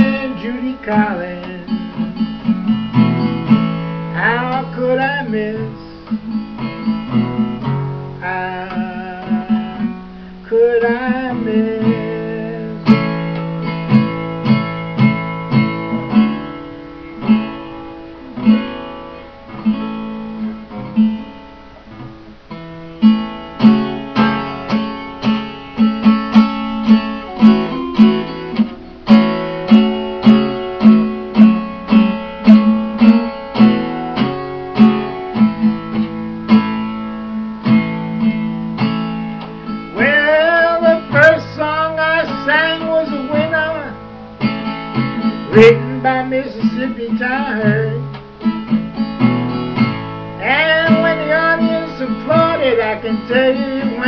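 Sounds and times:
man singing: 0.0s - 2.3s, 4.1s - 6.4s, 8.2s - 13.1s, 39.9s - 44.0s, 45.4s - 48.2s, 50.4s - 54.0s
acoustic guitar blues playing: 0.0s - 54.0s.

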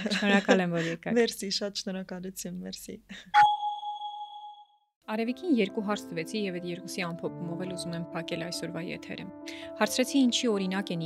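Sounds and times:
speech: 5.1s - 11.0s.

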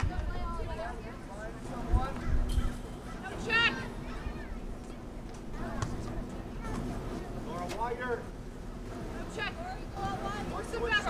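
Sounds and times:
low outdoor rumble: 0.0s - 11.0s
distant voices calling: 0.3s - 11.0s.

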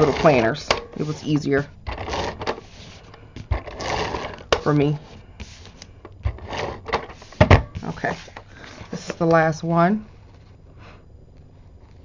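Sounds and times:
paper rustling and sliding: 0.0s - 9.3s.

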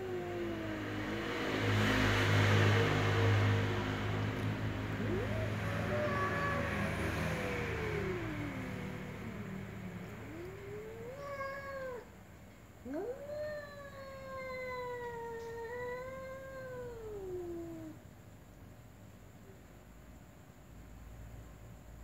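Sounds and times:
cats meowing: 0.0s - 1.4s, 4.8s - 12.1s, 12.8s - 18.0s.

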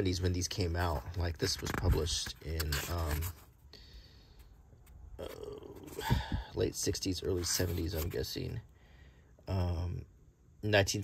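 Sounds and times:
man saying uh: 9.5s - 11.0s.

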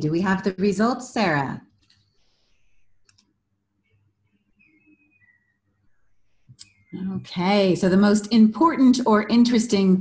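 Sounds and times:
faint clicks: 3.0s - 3.3s.

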